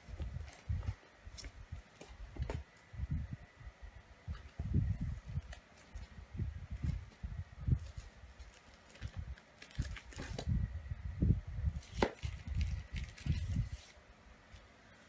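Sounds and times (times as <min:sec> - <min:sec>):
paper rustling: 0:11.8 - 0:14.0.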